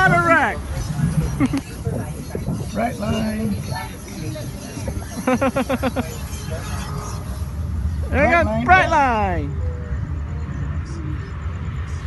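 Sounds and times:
steady low rumble: 0.0 - 12.0
person laughing: 1.2 - 1.8, 5.1 - 6.3.

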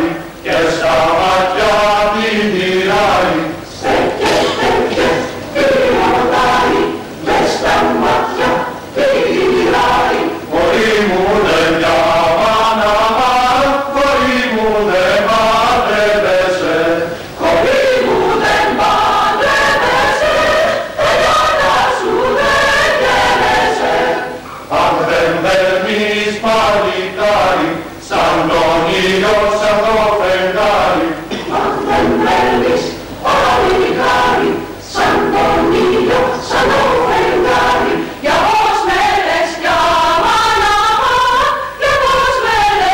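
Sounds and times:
mixed choir singing in harmony: 0.0 - 42.9.

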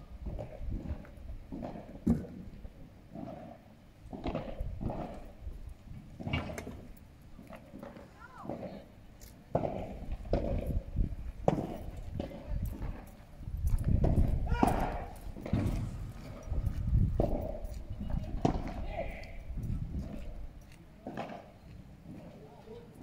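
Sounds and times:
ball struck with paddles: 14.0 - 15.8, 18.3 - 18.9, 21.1 - 21.5.

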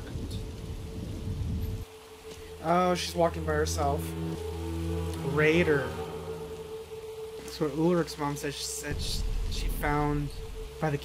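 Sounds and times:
low rumble: 0.0 - 11.0
steady rain: 0.0 - 11.0.

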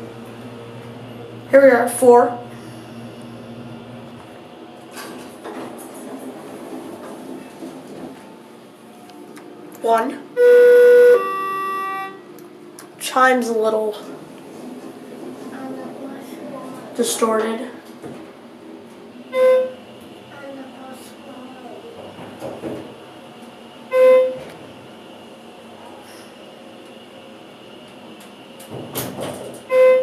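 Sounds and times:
elevator doors sliding open: 0.0 - 9.0, 13.3 - 20.3, 21.8 - 30.0
low hum: 0.0 - 20.5
elevator chime beep: 10.4 - 12.3, 23.9 - 24.5.

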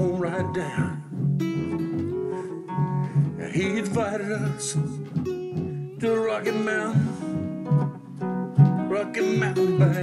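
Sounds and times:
rhythm guitar strumming: 0.0 - 10.0.

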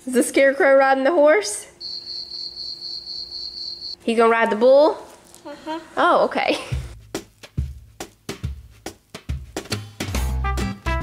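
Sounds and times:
high trilling electronic tone: 1.8 - 4.0.

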